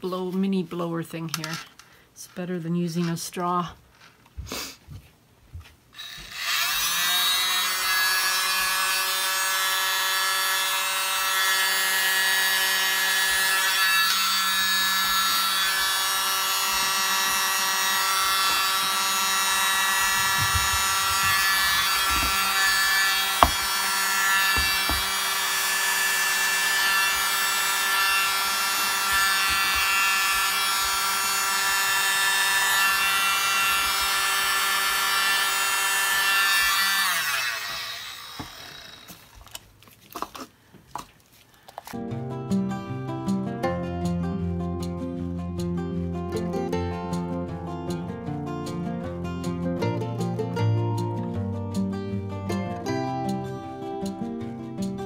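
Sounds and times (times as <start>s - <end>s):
electric mini blower running: 6.0s - 39.4s.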